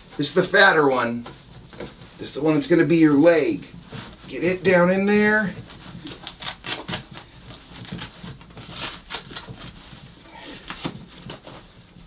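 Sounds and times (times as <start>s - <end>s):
fabric and rice rustling: 0.0s - 12.0s.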